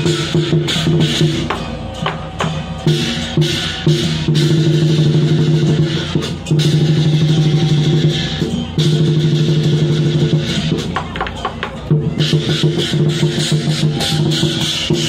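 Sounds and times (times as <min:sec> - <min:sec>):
cymbals clashing: 0:00.0 - 0:15.0
large drum rolls: 0:00.0 - 0:15.0.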